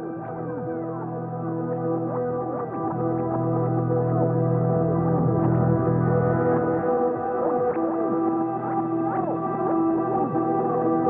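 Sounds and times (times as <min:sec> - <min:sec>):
ambient synth music: 0:00.0 - 0:11.0.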